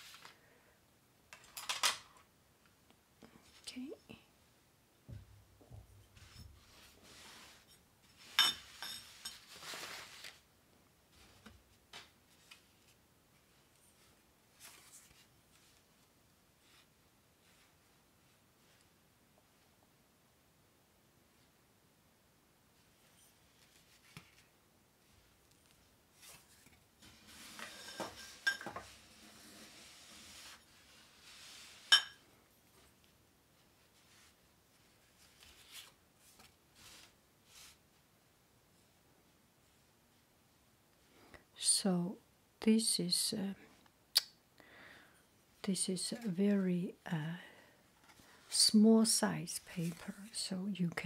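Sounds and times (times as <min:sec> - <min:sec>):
paper rustling: 0:00.0 - 0:00.4, 0:09.0 - 0:10.5, 0:14.0 - 0:15.8, 0:33.9 - 0:37.8.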